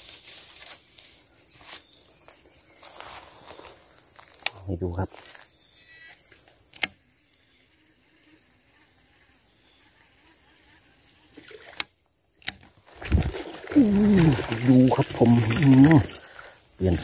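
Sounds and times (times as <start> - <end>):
high insect drone: 0.0 - 17.0.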